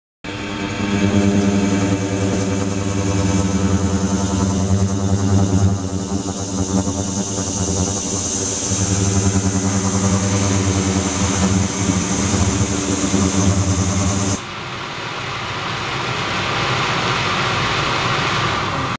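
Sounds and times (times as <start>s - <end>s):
machine hum with low buzz: 0.2s - 17.2s
thin high whine: 0.3s - 18.9s.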